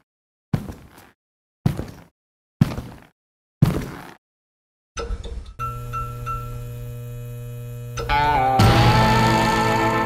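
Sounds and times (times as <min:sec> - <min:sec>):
neon sign electrical hum: 0:05.6 - 0:10.0.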